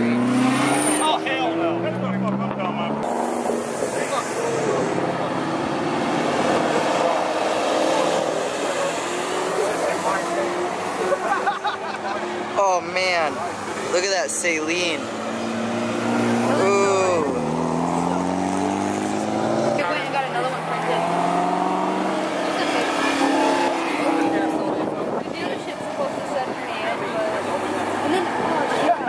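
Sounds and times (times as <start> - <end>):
sports car engines revving past: 0.0 - 29.0.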